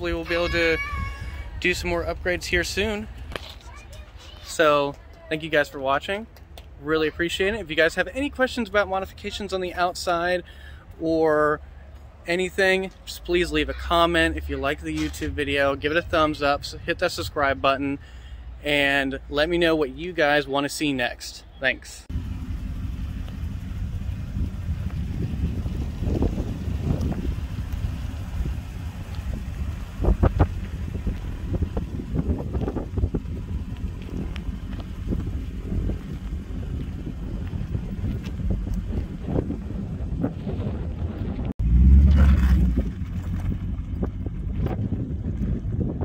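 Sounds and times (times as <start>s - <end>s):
wind buffeting microphone: 23.7s - 41.8s, 42.6s - 46.0s.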